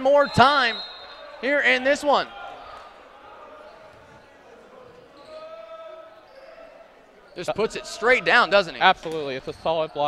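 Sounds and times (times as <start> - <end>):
echoing court noise: 0.0 - 10.0.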